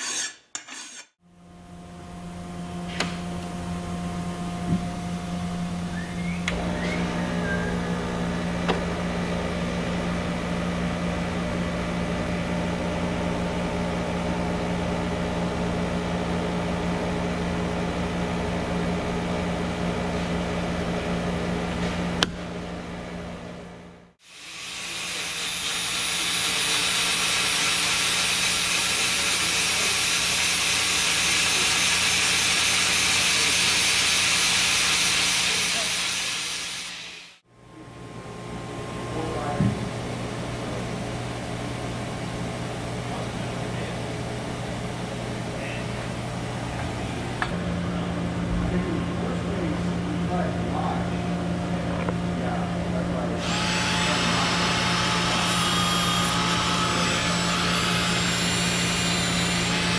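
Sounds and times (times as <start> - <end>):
angle grinder grinding steel: 0.0 - 1.2, 24.2 - 37.4, 53.4 - 59.9
machine hum: 1.3 - 59.9.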